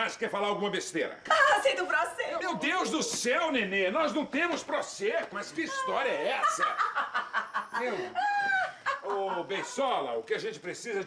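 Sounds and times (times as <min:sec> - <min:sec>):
woman laughing loudly: 0:06.1 - 0:09.9.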